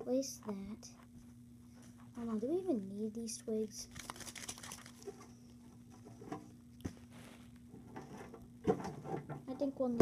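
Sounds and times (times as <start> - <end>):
steady low hum: 0.0 - 10.0
twigs scratching and tapping: 3.9 - 5.2.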